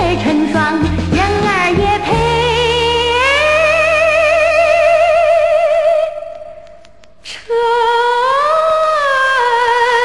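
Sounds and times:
woman singing folk tune: 0.0 - 6.2
record surface noise: 6.2 - 7.4.

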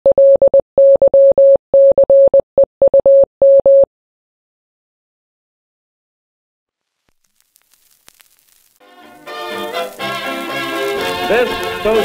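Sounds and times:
morse code beeps: 0.0 - 3.9.

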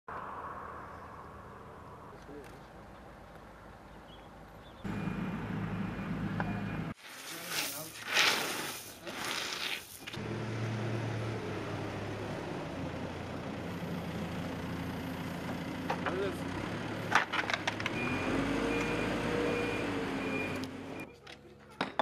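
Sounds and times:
construction machinery engine hum: 0.1 - 7.0, 10.0 - 22.0
loud rough scraping: 7.0 - 10.0.

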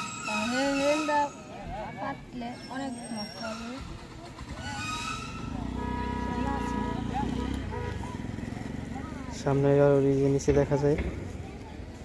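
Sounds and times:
voices: 0.0 - 12.0.

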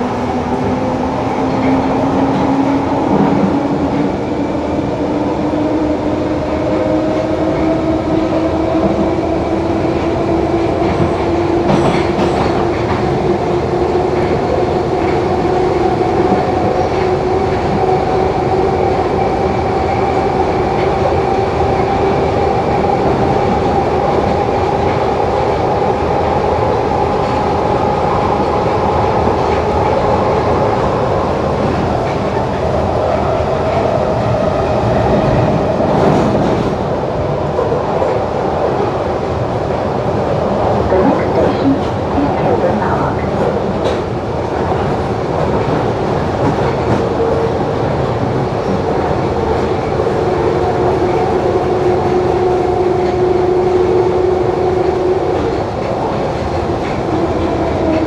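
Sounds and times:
train rumbling through tunnel: 0.0 - 58.0.

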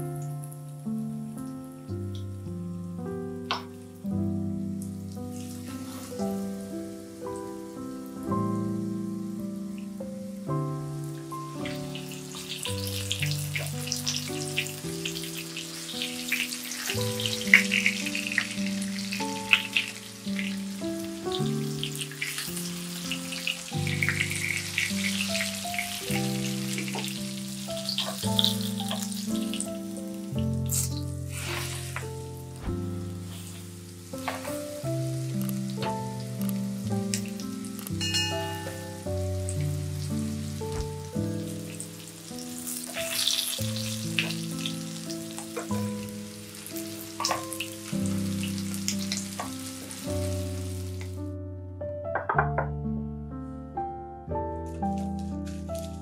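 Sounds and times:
gentle melody: 0.0 - 56.0
cutlets sizzling in oil: 4.8 - 8.2, 9.2 - 51.2.

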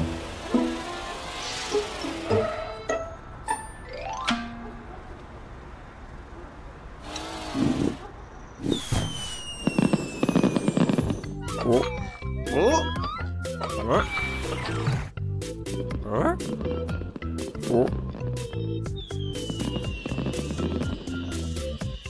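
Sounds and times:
long falling whistle: 8.6 - 11.2
crackling firework bursts: 8.6 - 11.9, 19.0 - 21.9
rising whistle of rocket: 8.6 - 12.2
background music: 11.3 - 22.0.

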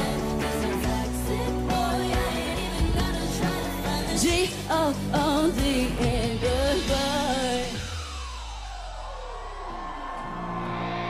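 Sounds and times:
woman singing with vibrato: 0.0 - 7.9
amplified backing track: 0.0 - 8.0.

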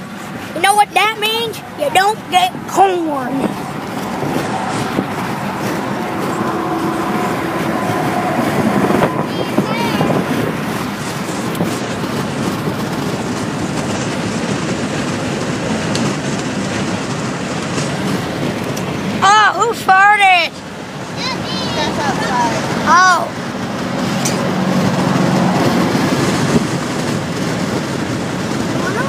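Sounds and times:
car road and engine noise: 0.0 - 29.0
boy's voice: 0.5 - 3.6, 8.9 - 10.4, 21.2 - 23.4, 28.8 - 29.0.

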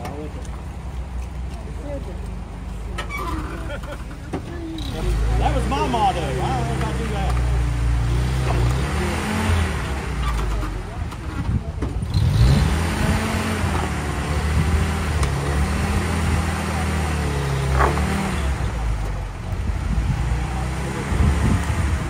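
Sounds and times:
engine revving at low revs: 4.6 - 22.0.

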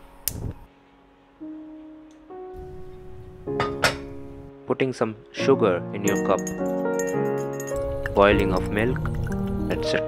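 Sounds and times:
soft guitar music: 1.4 - 10.0.

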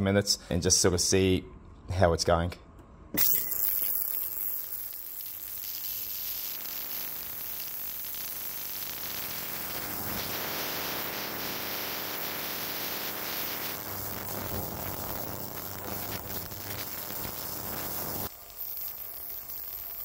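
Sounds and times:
ultrasonic cleaner hissing buzz: 3.5 - 20.0.

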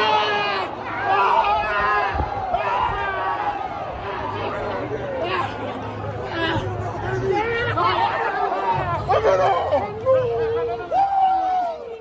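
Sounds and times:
people chattering and shouting: 0.0 - 12.0.

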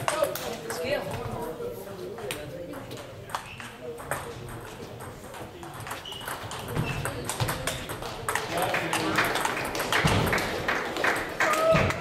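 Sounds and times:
chatter in busy hall: 0.0 - 12.0.

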